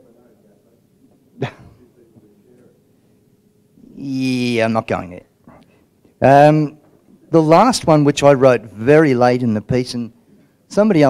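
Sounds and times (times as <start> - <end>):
low murmur of room: 0.0 - 11.0.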